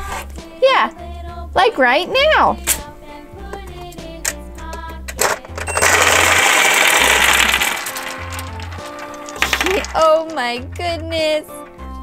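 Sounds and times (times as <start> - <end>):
cheerful background music: 0.0 - 12.0
toy door click: 4.2 - 8.0
gumballs clattering on table: 5.1 - 11.8.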